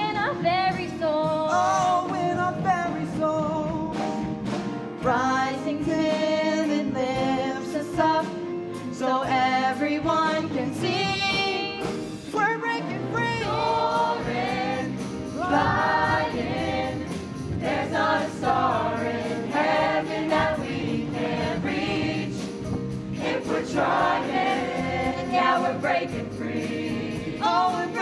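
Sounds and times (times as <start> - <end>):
live pit band: 0.0 - 28.0.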